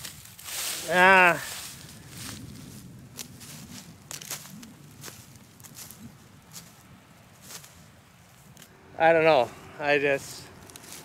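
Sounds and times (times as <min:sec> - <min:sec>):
footsteps crunching dry stalks: 0:00.0 - 0:11.0.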